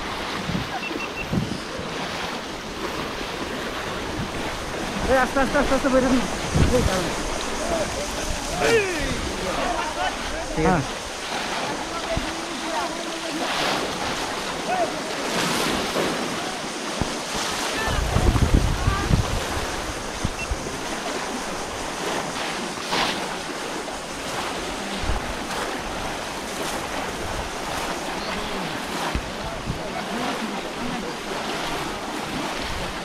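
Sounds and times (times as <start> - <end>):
wind buffeting microphone: 0.0 - 12.5, 15.4 - 22.8
people wading through muddy water: 0.0 - 33.0.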